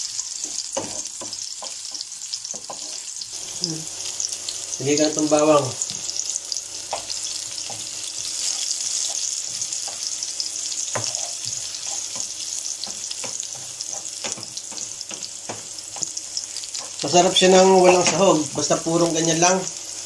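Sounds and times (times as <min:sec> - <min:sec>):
onion sizzling in oil: 0:00.0 - 0:20.0
wooden spoon knocking on pan: 0:00.4 - 0:03.0, 0:06.8 - 0:08.0, 0:10.9 - 0:16.2, 0:17.8 - 0:18.3.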